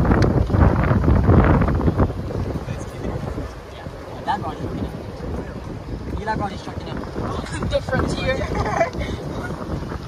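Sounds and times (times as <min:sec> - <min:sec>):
wind buffeting microphone: 0:00.0 - 0:10.0
voices: 0:02.4 - 0:09.9.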